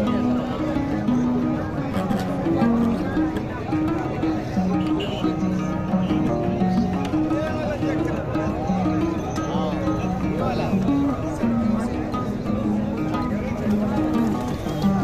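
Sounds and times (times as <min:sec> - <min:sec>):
crowd chatter: 0:00.0 - 0:15.0
plucked-string music: 0:00.0 - 0:15.0.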